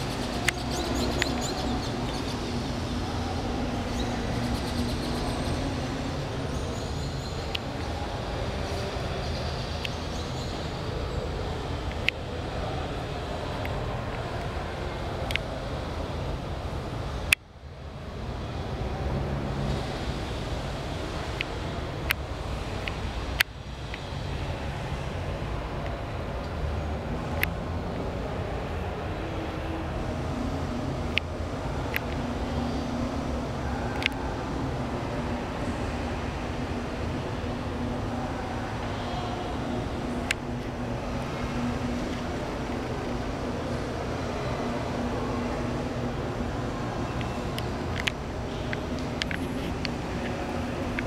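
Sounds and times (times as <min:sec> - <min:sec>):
low rumble and hiss: 0:00.0 - 0:51.0.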